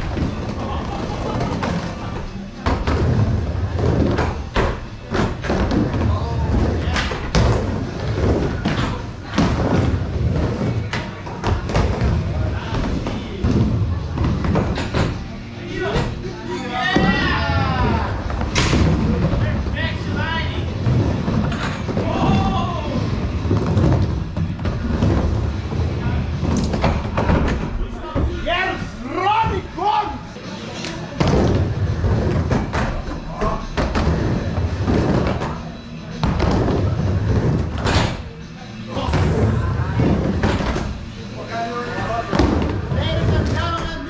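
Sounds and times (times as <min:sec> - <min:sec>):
skateboard wheels rolling on wood: 0:00.0 - 0:15.2, 0:17.0 - 0:28.4.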